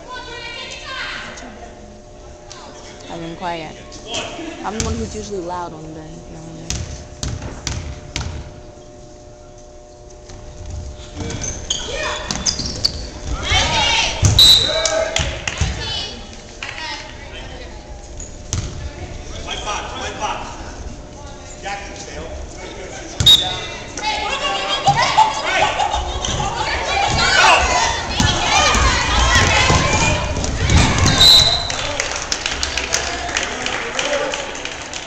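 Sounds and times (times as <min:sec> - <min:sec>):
basketball bouncing on gym floor: 0:06.6 - 0:08.6, 0:12.2 - 0:14.4, 0:18.5 - 0:18.8, 0:28.1 - 0:31.7
chatter of voices: 0:18.8 - 0:31.0.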